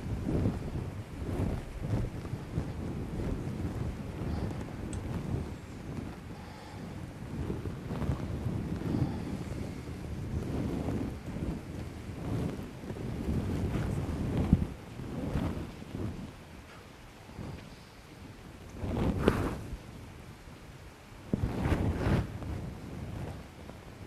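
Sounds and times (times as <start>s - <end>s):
low uneven rumbling: 0.0s - 24.0s.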